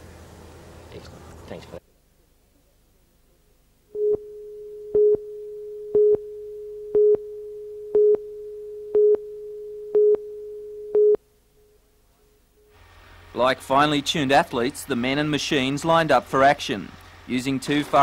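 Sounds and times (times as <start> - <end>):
steady tone: 3.9 - 11.9
countdown beeps: 4.0 - 11.2.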